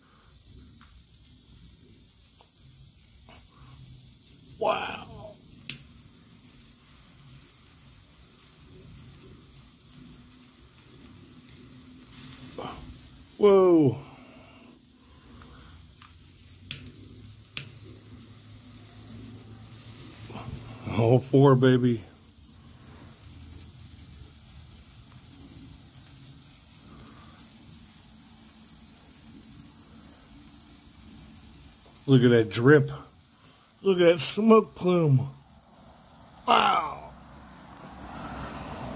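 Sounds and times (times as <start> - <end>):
jet-flame torch lighter: 0.0 - 32.3, 33.1 - 38.9
sparklers sizzling: 0.0 - 38.9.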